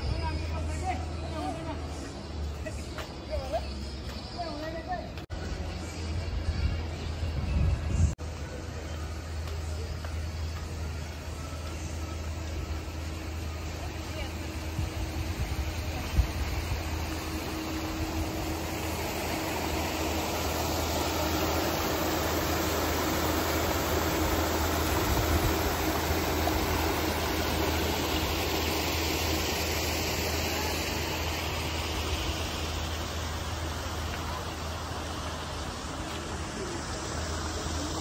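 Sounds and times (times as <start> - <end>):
paddlewheel aerator churning water: 9.3 - 38.0.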